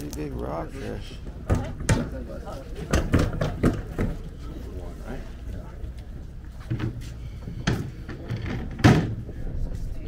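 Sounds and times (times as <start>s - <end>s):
indistinct talk of people: 0.0s - 10.0s.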